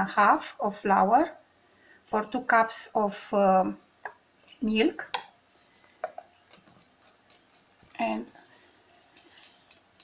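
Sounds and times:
flour pouring clicks and taps: 6.0 - 10.0.

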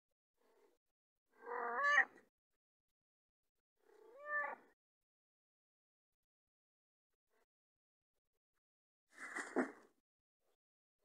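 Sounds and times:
cat meowing: 1.4 - 2.2, 4.0 - 4.8.

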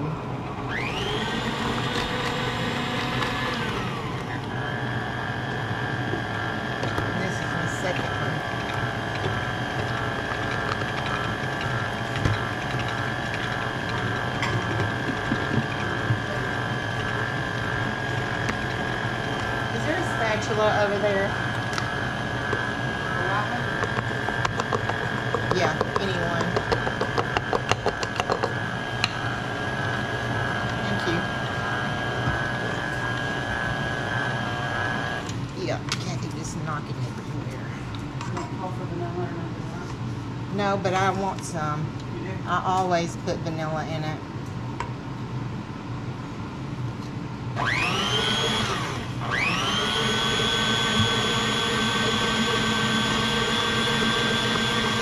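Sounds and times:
stand mixer motor whine: 0.3 - 35.5, 47.5 - 55.0.

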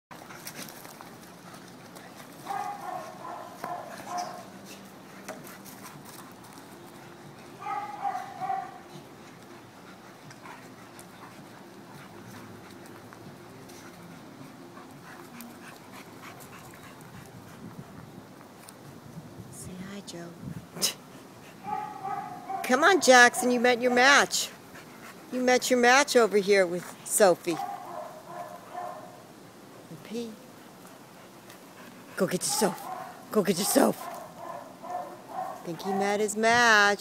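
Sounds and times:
dogs play-fighting: 0.1 - 18.9, 20.6 - 25.5, 26.8 - 29.3, 30.5 - 36.7.

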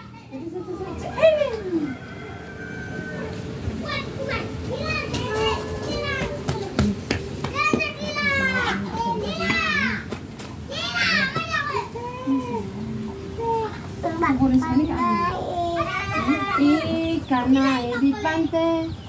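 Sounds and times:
children shouting and squealing: 0.0 - 18.5.

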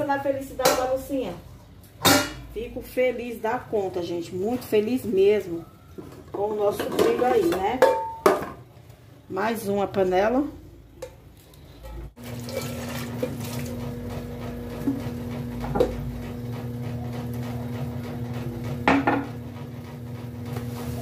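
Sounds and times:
hum in pipes: 10.6 - 21.0
tap water running into sink: 12.2 - 14.0.

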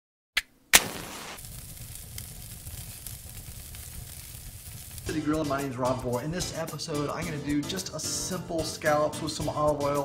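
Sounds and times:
sharp bangs: 0.7 - 1.6
fire crackling hiss: 0.7 - 7.9
low rumble: 1.4 - 5.4.

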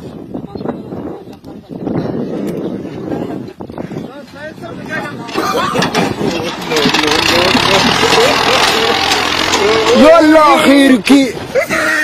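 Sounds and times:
tractor engine running roughly: 4.8 - 11.5
men shouting: 5.0 - 12.0.

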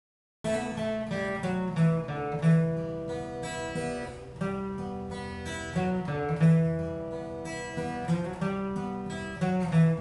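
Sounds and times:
acoustic guitar playing: 0.4 - 10.0.

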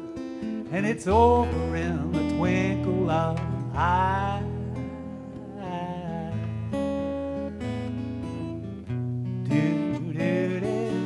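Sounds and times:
acoustic guitar playing: 0.0 - 11.0
man singing without words: 0.6 - 7.1, 9.4 - 11.0.

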